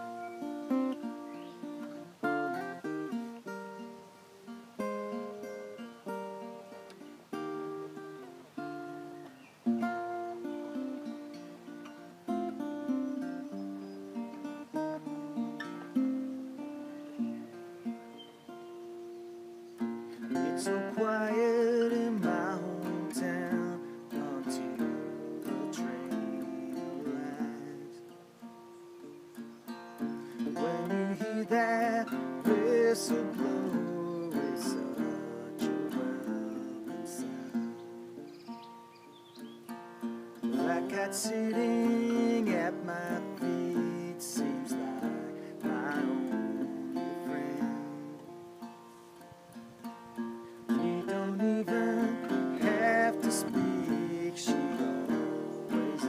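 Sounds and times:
man singing: 0:00.0 - 0:00.4, 0:20.2 - 0:28.2, 0:30.2 - 0:37.9, 0:40.4 - 0:48.4, 0:50.6 - 0:56.0
acoustic guitar picking: 0:00.0 - 0:56.0.

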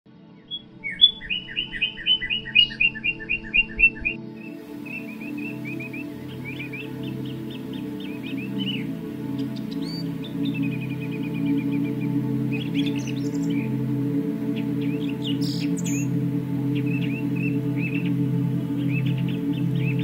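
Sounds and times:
low ambient music drone: 0:00.1 - 0:20.0
bird chirping: 0:00.4 - 0:20.0.

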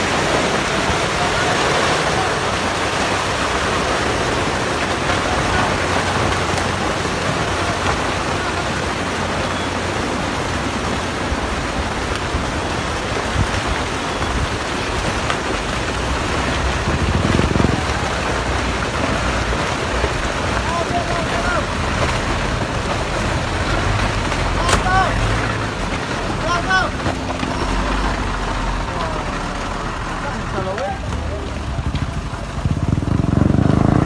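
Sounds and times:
debris rumbling down slope: 0:00.0 - 0:34.0
landslide rushing: 0:00.0 - 0:34.0.

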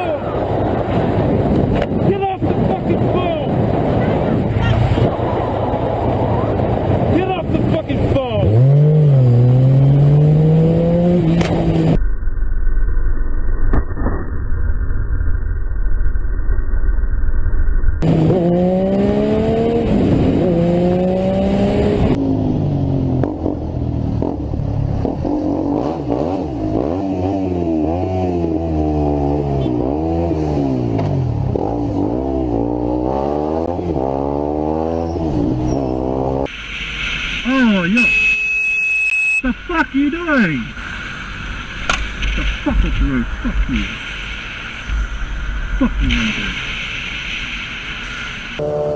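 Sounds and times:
motorcycle engine revving: 0:03.5 - 0:12.0, 0:18.0 - 0:36.5, 0:48.6 - 0:48.9
motorcycle engine accelerating: 0:03.5 - 0:14.3, 0:15.7 - 0:36.5, 0:48.6 - 0:48.9.

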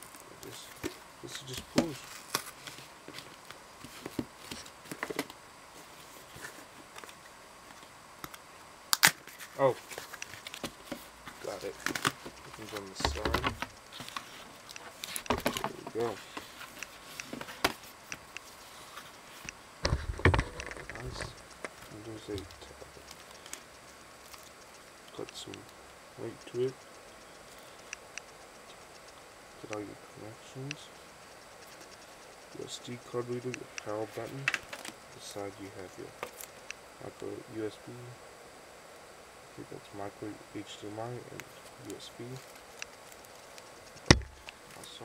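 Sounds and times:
tablet handling sounds: 0:00.0 - 0:25.7
low hiss: 0:00.0 - 0:45.0
faint clicks: 0:20.4 - 0:25.8, 0:26.4 - 0:29.9, 0:30.7 - 0:33.9.

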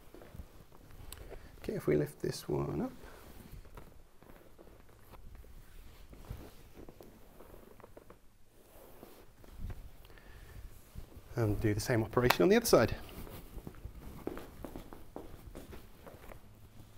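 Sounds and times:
faint rustling: 0:00.0 - 0:16.9.

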